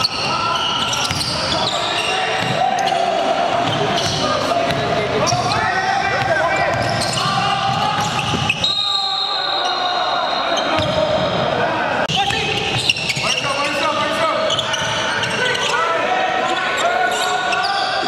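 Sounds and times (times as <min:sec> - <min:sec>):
players calling out: 0:00.0 - 0:18.0
sneakers squeaking: 0:00.0 - 0:18.0.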